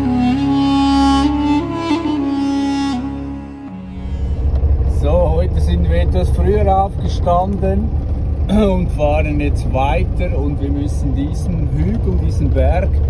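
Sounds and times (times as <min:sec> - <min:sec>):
bowed string music: 0:00.0 - 0:06.8
diesel truck engine running: 0:00.0 - 0:13.0
man talking: 0:04.9 - 0:07.9, 0:08.5 - 0:13.0.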